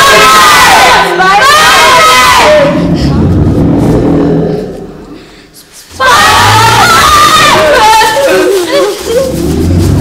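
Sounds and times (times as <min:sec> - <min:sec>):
boys shouting drawn-out calls: 0:06.0 - 0:08.8.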